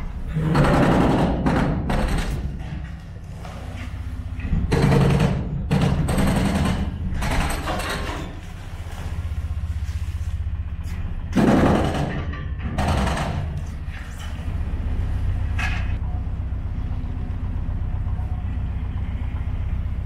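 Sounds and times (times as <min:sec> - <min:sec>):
boat engine throbbing: 0:13.8 - 0:20.0.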